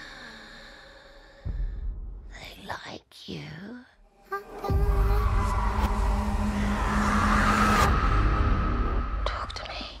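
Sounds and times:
dense rumble with low tone: 0:04.7 - 0:10.0
whispered voice: 0:09.2 - 0:10.0.

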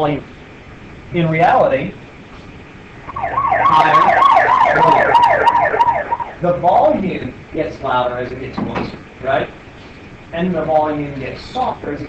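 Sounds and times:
police siren yelping wail: 0:03.0 - 0:06.5.

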